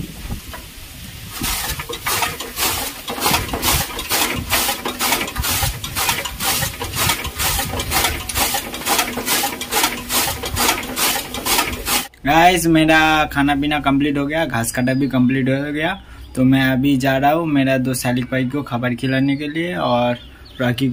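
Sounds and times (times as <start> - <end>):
chaff cutter chopping straw: 1.3 - 12.1.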